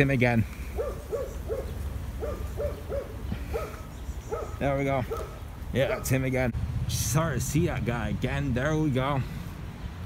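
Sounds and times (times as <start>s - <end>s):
dog barking: 0.8s - 6.2s.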